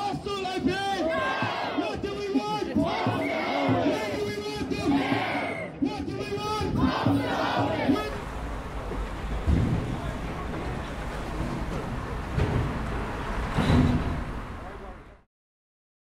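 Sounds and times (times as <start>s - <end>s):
protesters shouting: 0.0s - 8.3s
city street traffic rumble: 5.8s - 15.3s.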